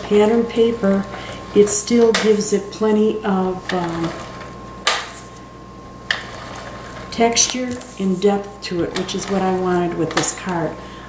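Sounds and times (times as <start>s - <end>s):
tape runner hiss: 0.0s - 11.0s.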